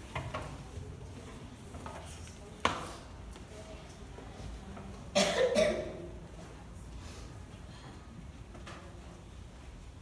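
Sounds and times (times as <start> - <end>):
person coughing: 5.2 - 6.0.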